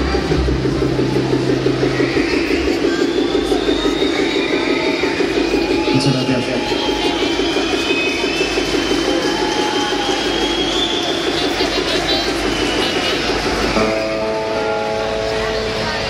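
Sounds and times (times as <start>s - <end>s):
rock band droning guitars: 12.6s - 16.0s.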